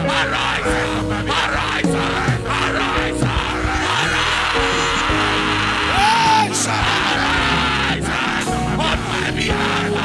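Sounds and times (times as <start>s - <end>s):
sustained keyboard chords: 0.0s - 10.0s
drum hits: 1.6s - 8.0s.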